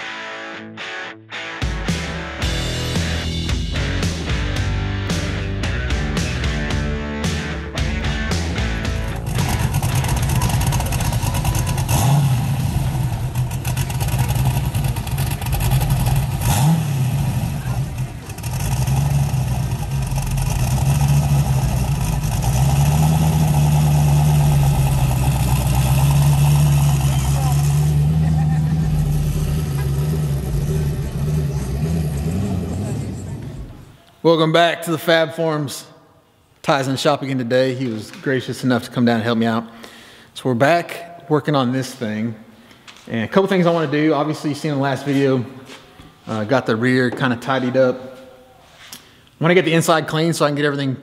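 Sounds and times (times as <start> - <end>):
car engine idling and revving: 1.9 - 34.0.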